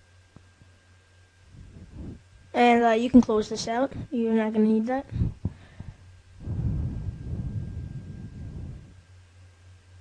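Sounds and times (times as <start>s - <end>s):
low rumbling: 1.4s - 2.9s, 5.1s - 9.2s.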